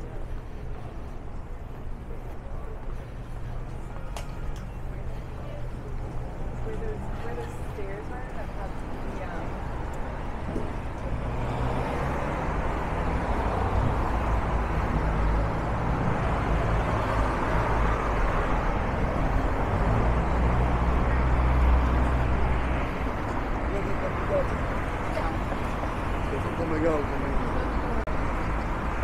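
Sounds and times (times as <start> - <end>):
cars passing on road: 0.0 - 29.0.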